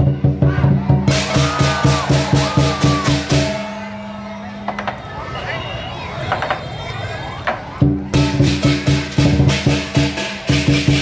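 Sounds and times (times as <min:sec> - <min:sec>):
fast drum beats: 0:00.0 - 0:03.8, 0:07.4 - 0:11.0.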